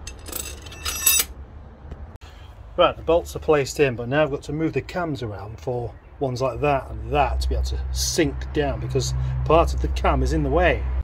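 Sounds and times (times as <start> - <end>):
metal bolts clinking: 0.0 - 1.4.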